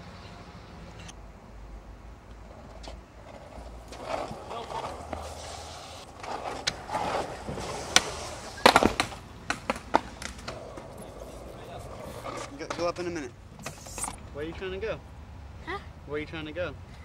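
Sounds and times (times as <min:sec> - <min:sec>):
skateboard wheels grinding on stone: 0:02.5 - 0:14.1
skateboard clacks: 0:02.8 - 0:13.1.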